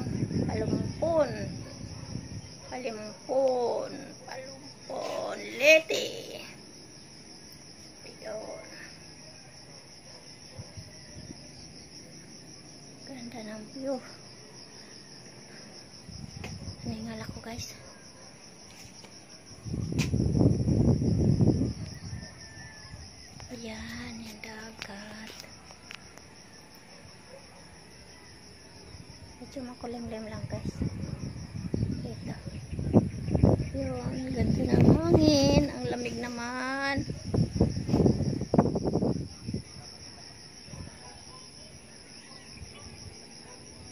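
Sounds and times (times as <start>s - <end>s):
chorus of insects calling: 0.0s - 43.9s.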